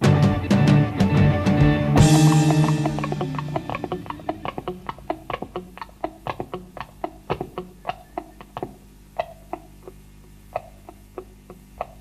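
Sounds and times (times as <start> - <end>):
clicking and tapping percussion: 2.0 - 12.0.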